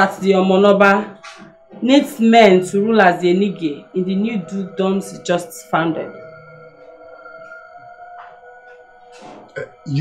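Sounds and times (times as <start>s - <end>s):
soft film music drone: 0.0s - 10.0s.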